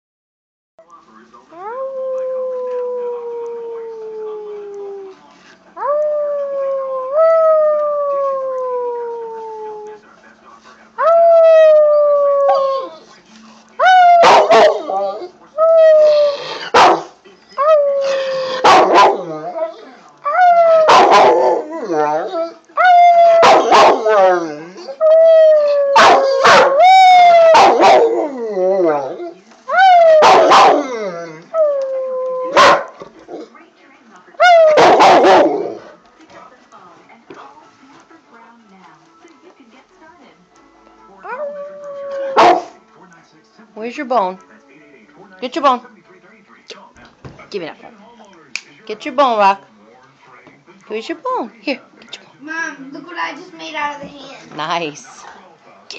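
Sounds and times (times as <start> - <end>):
dog howling: 5.8 - 9.9, 11.0 - 13.1, 13.8 - 17.0, 17.6 - 33.5, 34.4 - 36.0, 41.2 - 42.8
dog yelping: 23.2 - 24.2, 25.9 - 28.2, 29.9 - 31.1.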